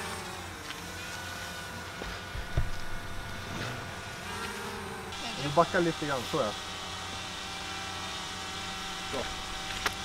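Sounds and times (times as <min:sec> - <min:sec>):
low machine hum: 0:00.0 - 0:10.0
low thump: 0:02.4 - 0:03.9.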